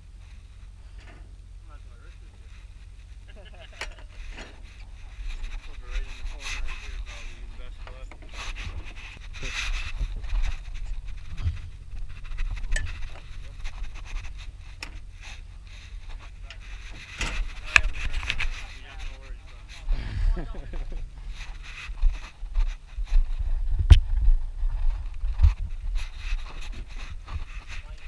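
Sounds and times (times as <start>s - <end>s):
low wind rumble: 0.0s - 28.0s
jacket rustling on microphone: 2.2s - 28.0s
handling knocks and clatters: 7.6s - 19.3s.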